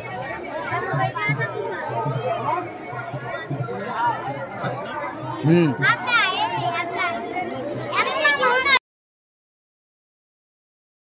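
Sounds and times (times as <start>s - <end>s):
children calling and chattering: 0.0s - 8.8s
people talking: 0.0s - 8.8s.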